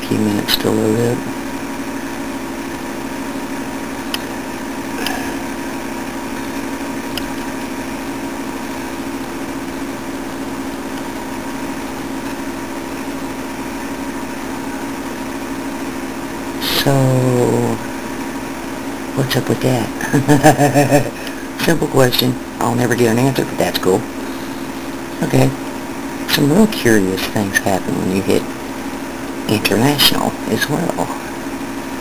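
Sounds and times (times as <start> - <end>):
machine hum: 0.0 - 32.0.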